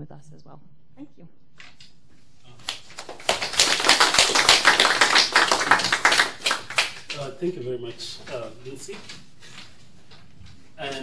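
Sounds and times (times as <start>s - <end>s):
audience applauding: 2.6s - 7.4s.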